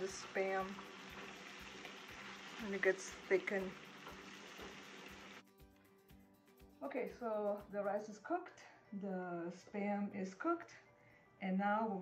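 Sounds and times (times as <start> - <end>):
meat sizzling in a frying pan: 0.0 - 5.4.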